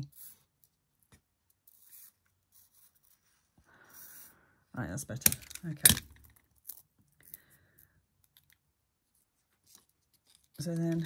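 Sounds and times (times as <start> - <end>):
scratching and rubbing of tape: 1.5 - 4.3.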